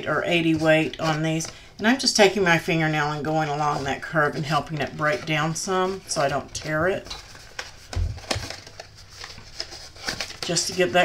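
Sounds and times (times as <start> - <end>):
cardstock rustling and crackling: 0.0 - 11.0.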